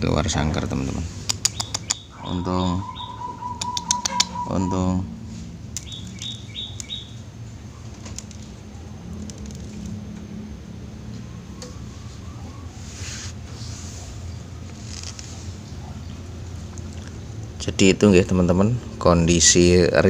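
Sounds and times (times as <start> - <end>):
high bird chirps: 1.3 - 5.0, 5.8 - 8.0.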